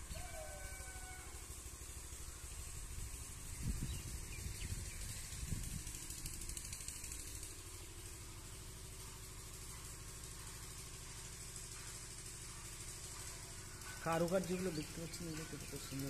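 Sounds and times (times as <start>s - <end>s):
low engine hum: 1.2s - 16.0s.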